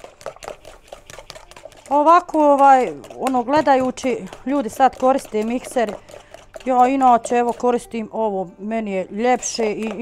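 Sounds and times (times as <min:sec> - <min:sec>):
spoon beating batter in bowl: 0:00.0 - 0:10.0.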